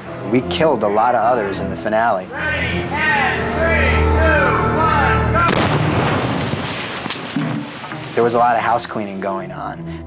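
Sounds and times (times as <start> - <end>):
low musical drone: 0.0 - 6.0
voices: 0.3 - 5.7
loud explosion: 5.5 - 7.4.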